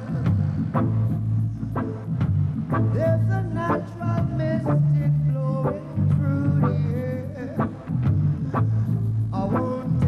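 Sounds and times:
person singing: 0.0 - 1.0, 2.9 - 10.0
reggae band playing: 0.0 - 10.0.

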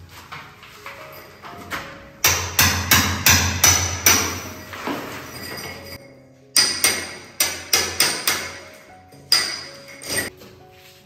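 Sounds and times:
hammer driving nails into concrete: 2.3 - 4.5, 6.6 - 8.6.

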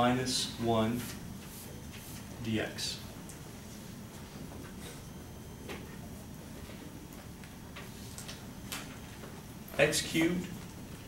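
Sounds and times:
marker writing on a whiteboard: 1.0 - 2.3.

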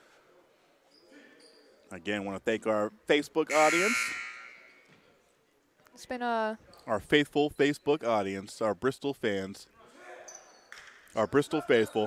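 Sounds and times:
man speaking: 1.9 - 4.2, 11.2 - 12.0
buzzer blast echoing: 3.5 - 4.6.

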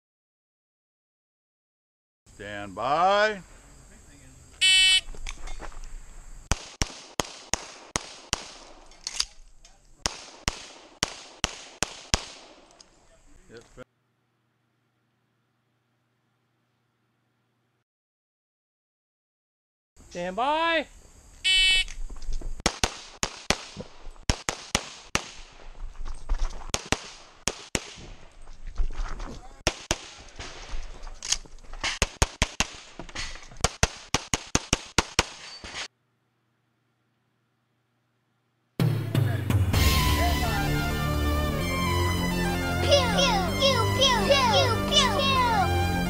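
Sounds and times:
pistol firing: 6.5 - 9.4, 10.0 - 12.8, 26.7 - 28.1, 29.6 - 30.7, 31.8 - 33.0.

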